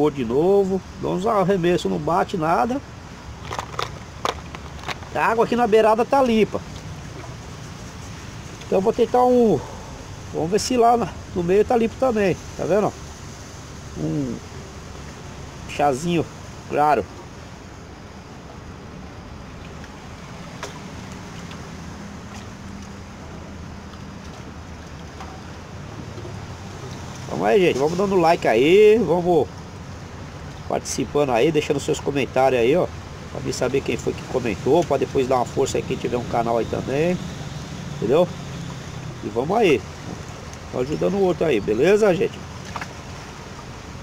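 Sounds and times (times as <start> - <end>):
boat engine drone: 0.0 - 44.0
low steady background noise: 0.0 - 44.0
wind: 0.0 - 44.0
fishing tackle clicks and rustles: 3.0 - 8.8.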